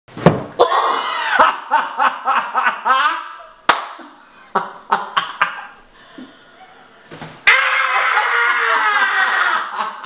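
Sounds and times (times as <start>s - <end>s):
sharp slap: 3.7s - 4.1s.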